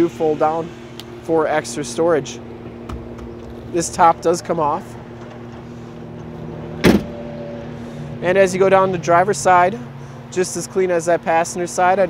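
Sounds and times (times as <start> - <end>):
low background hum: 0.0 - 12.0.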